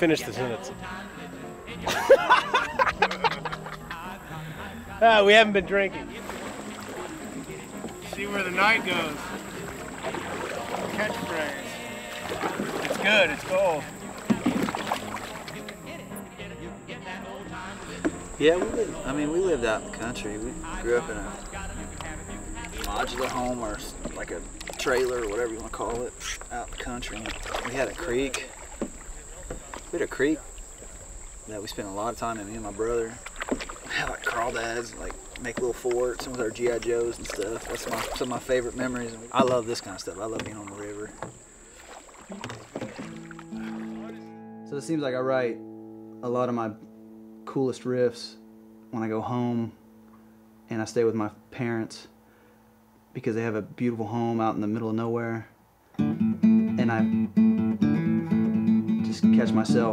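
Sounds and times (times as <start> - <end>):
paddle strokes in water: 6.0 - 16.0, 17.5 - 44.2
guitar with ringing notes: 43.1 - 50.7, 56.0 - 59.9.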